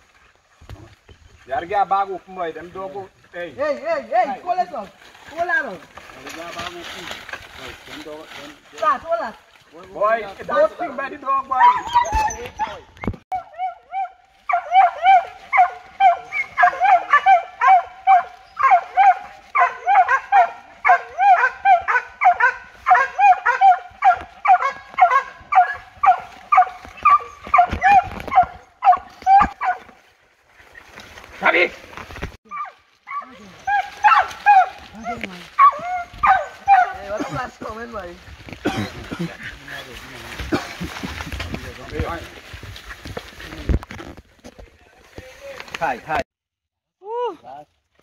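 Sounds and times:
dog barking: 11.6s - 29.9s, 32.5s - 37.5s.

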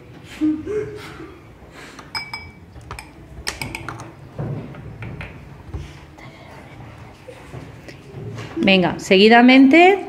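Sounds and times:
spoons clinking on glass tumblers: 2.1s - 4.1s.

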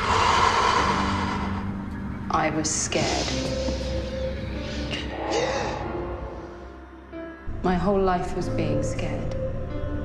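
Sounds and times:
background music with low tones: 0.0s - 10.0s.

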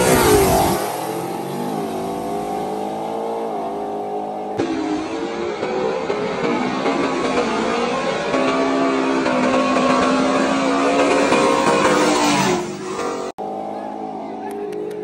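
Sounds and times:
car engines revving hard: 0.0s - 15.0s.

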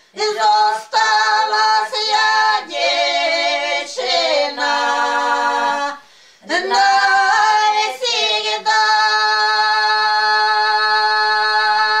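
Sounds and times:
women singing unaccompanied: 0.0s - 12.0s.

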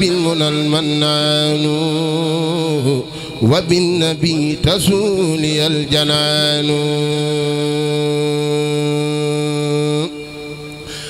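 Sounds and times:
man chanting: 0.0s - 11.0s.

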